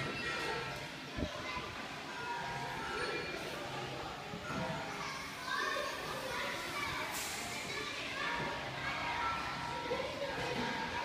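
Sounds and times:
children calling and chattering: 0:00.0 - 0:11.0.

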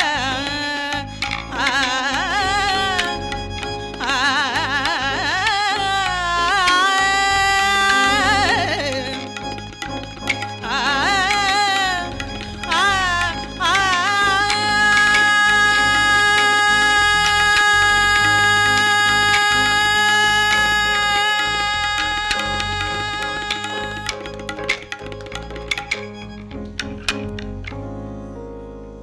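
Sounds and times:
tabla strokes: 0:00.0 - 0:27.8
bass guitar: 0:00.0 - 0:29.0
keyboard: 0:00.0 - 0:29.0
person singing a long note: 0:14.2 - 0:24.2.

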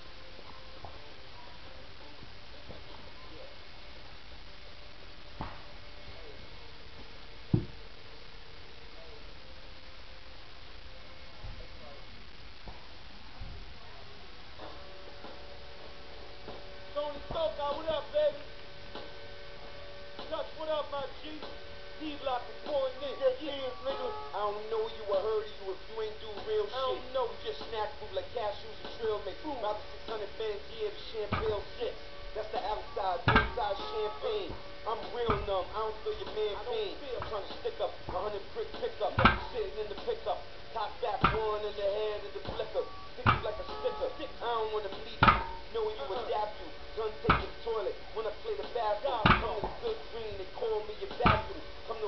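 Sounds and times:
electrical hum: 0:00.0 - 0:52.0
person speaking: 0:16.9 - 0:18.5, 0:20.2 - 0:52.0.

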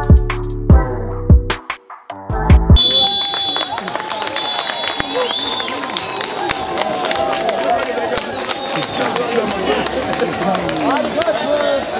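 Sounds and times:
crowd shouting and talking: 0:02.8 - 0:11.9.

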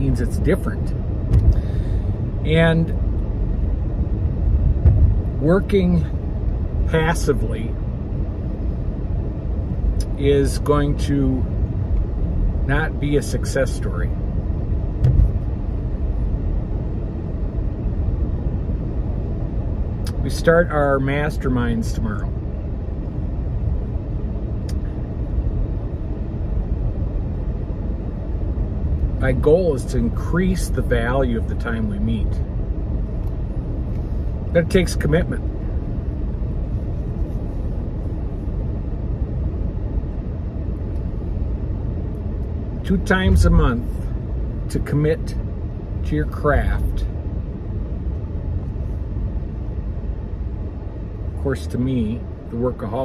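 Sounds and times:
car engine and road noise: 0:00.0 - 0:53.0.

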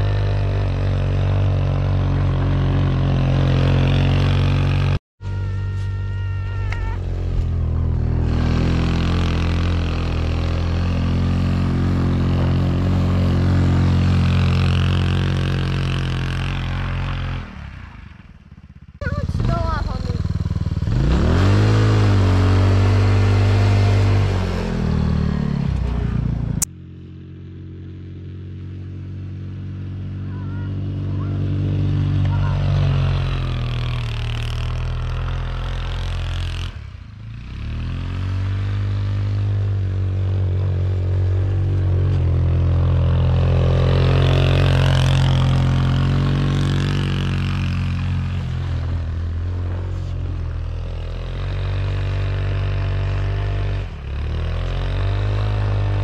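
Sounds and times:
go-kart engine revving: 0:00.0 - 0:26.7, 0:27.3 - 0:56.0.

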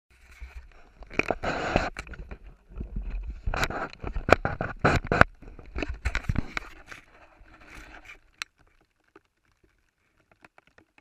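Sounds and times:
camera handling scrapes and knocks: 0:00.2 - 0:08.3
faint ticks: 0:03.6 - 0:11.0.

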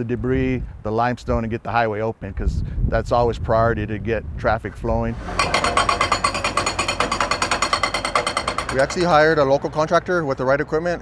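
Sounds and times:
hydraulic breaker hammering rock: 0:05.2 - 0:09.4.

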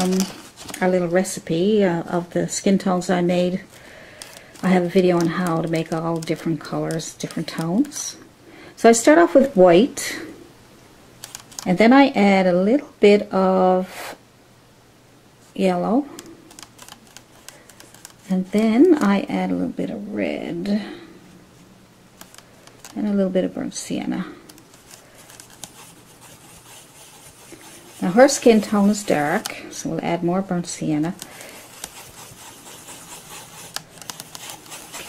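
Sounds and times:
paintbrush dabbing on palette: 0:25.5 - 0:29.6, 0:31.2 - 0:35.0.

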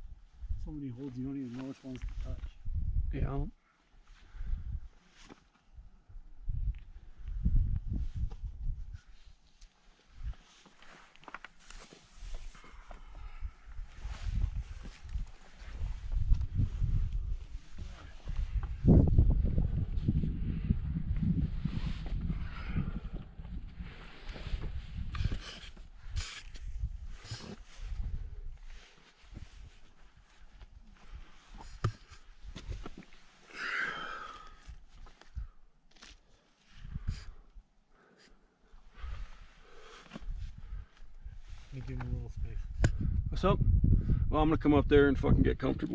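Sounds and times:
wind on microphone: 0:02.0 - 0:03.4, 0:06.3 - 0:09.2, 0:13.2 - 0:29.8, 0:36.8 - 0:37.4, 0:40.2 - 0:45.9
scuffs and scrapes on rock: 0:24.0 - 0:33.4.

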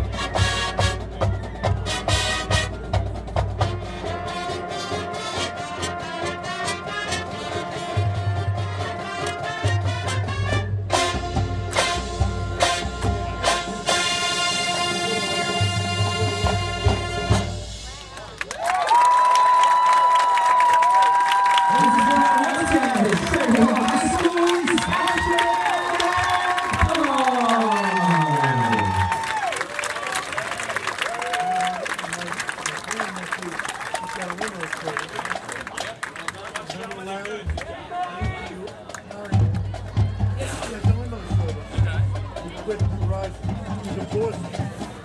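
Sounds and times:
marching band chord: 0:01.8 - 0:17.9
crowd cheering and applauding: 0:17.9 - 0:40.4
whoops and shouts: 0:18.5 - 0:31.8.

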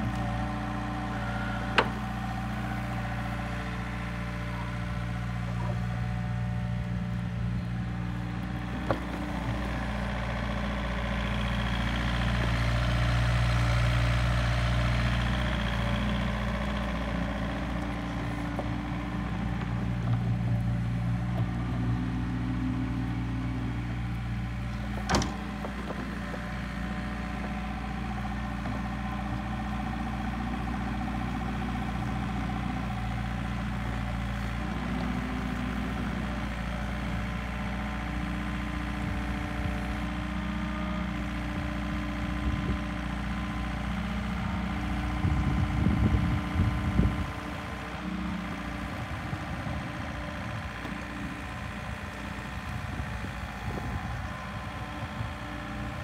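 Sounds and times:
excavator diesel engine running: 0:00.0 - 0:56.0.

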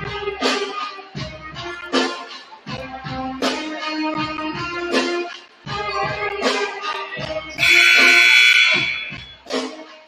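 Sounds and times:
music: 0:00.0 - 0:10.0
scoreboard horn: 0:07.6 - 0:09.4.

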